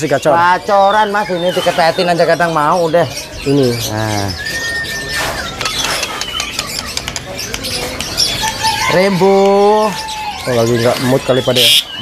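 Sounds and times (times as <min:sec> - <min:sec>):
songbirds whistling and chirping: 0:00.0 - 0:12.0.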